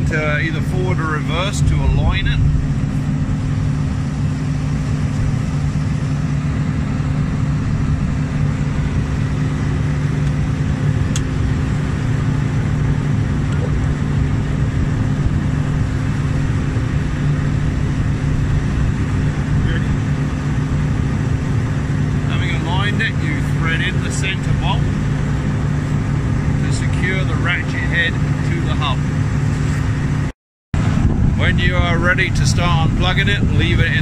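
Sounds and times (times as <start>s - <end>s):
engine running steadily: 0.0s - 34.0s.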